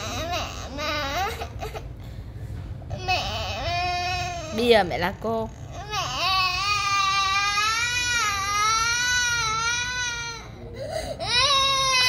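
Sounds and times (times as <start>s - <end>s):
girl crying: 0.0s - 2.0s, 2.9s - 4.7s.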